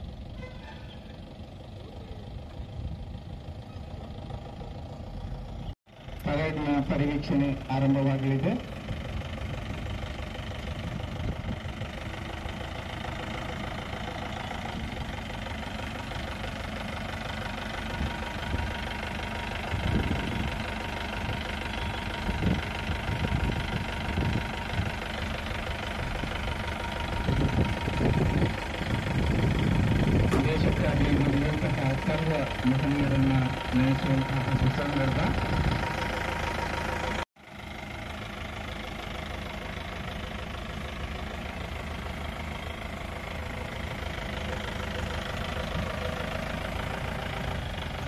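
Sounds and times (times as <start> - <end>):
jeep engine idling: 0.0 - 48.0.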